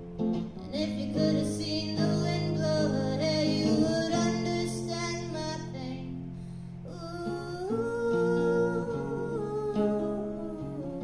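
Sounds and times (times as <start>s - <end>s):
plucked acoustic guitar: 0.0s - 11.0s
woman singing wordless melody: 0.5s - 11.0s.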